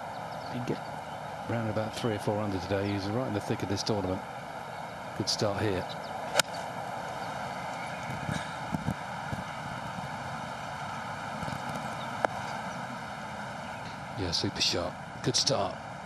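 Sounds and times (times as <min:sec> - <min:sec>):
steady outdoor hum: 0:00.0 - 0:16.0
golf club striking ball: 0:06.3 - 0:06.7.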